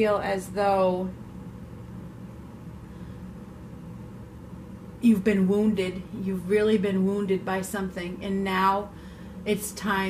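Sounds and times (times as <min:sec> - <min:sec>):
low room hum with hiss: 0:00.0 - 0:10.0.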